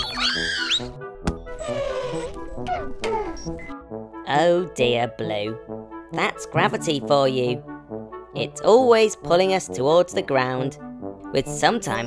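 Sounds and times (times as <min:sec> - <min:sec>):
squeaky electronic warble: 0:00.0 - 0:00.9
light children's music: 0:00.0 - 0:12.0.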